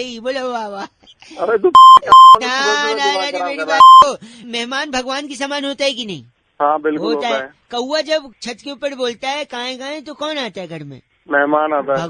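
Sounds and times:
man talking: 0:00.0 - 0:12.0
censor bleeps: 0:01.8 - 0:02.4, 0:03.7 - 0:04.1.

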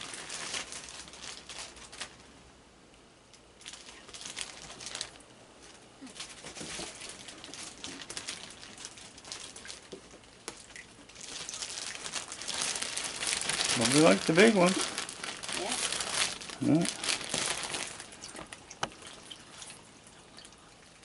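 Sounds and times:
plastic bag crinkling: 0:00.0 - 0:02.3, 0:03.6 - 0:20.0.

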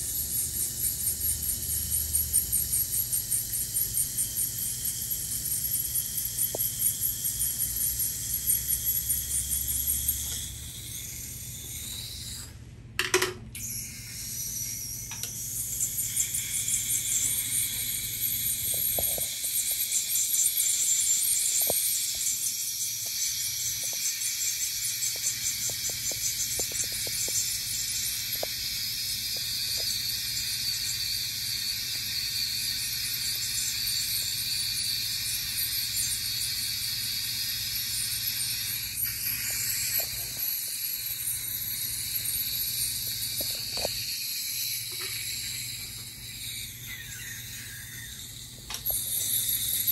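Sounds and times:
ultrasonic dental scaler hissing: 0:00.0 - 0:12.6, 0:13.2 - 0:49.9
saliva ejector suction hiss: 0:13.6 - 0:49.9.

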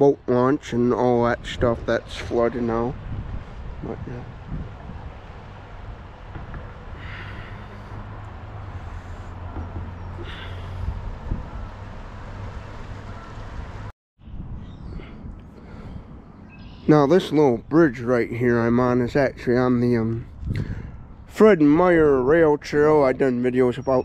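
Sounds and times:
low outdoor rumble: 0:00.0 - 0:23.8.

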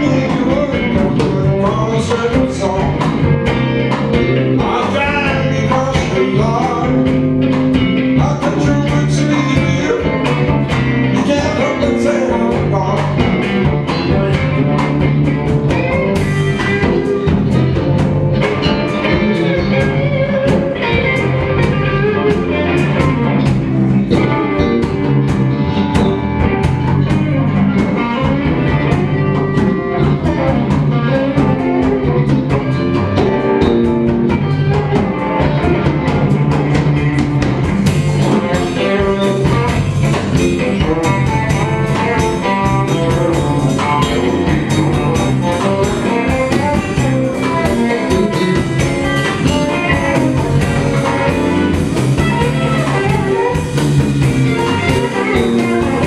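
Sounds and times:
bass guitar: 0:00.0 - 0:56.0
drum kit: 0:00.0 - 0:56.0
electric guitars: 0:00.0 - 0:56.0.

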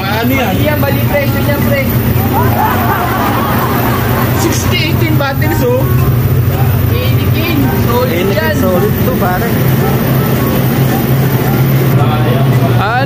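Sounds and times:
indistinct voices talking: 0:00.0 - 0:13.0
refrigeration fans humming: 0:00.0 - 0:13.0.

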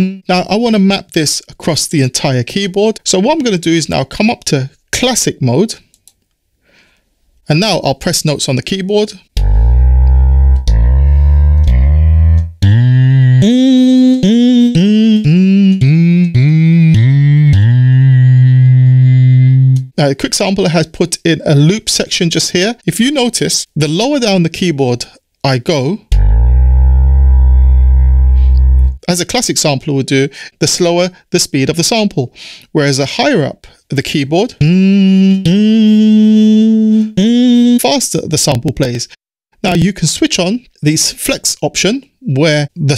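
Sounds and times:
sampled hummed vocal note: 0:09.4 - 0:19.9, 0:26.1 - 0:29.0.

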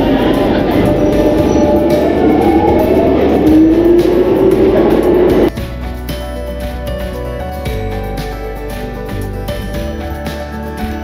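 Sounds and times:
train squealing: 0:00.0 - 0:05.5
low train rumble: 0:00.0 - 0:11.0
quiet music: 0:00.0 - 0:11.0.

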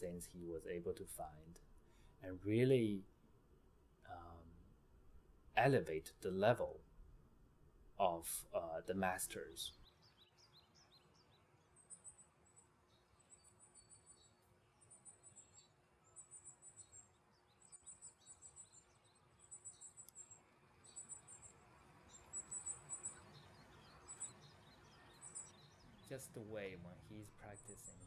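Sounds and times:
low steady background hum: 0:00.0 - 0:28.0
faint chirps: 0:11.7 - 0:28.0.

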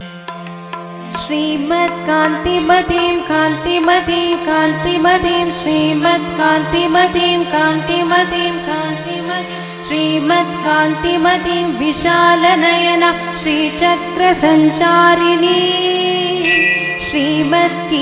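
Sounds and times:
woman singing: 0:01.2 - 0:18.0
steady drone: 0:16.4 - 0:18.0.

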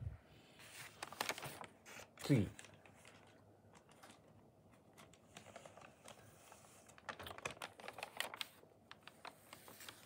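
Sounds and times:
paper rustling and crackling: 0:00.5 - 0:10.0.

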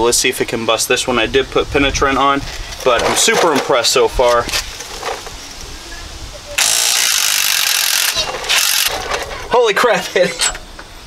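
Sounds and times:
impact wrench hammering: 0:06.6 - 0:09.0.

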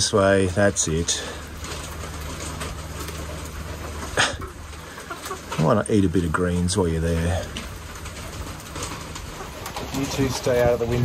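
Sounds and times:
hens calling: 0:00.0 - 0:11.0
rain hissing: 0:00.0 - 0:11.0.

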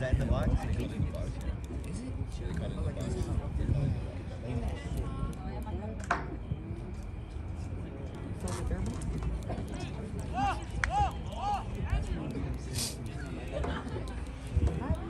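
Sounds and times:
wind rumble on microphone: 0:00.0 - 0:12.6, 0:13.6 - 0:15.0
distant voices of players: 0:00.1 - 0:15.0.

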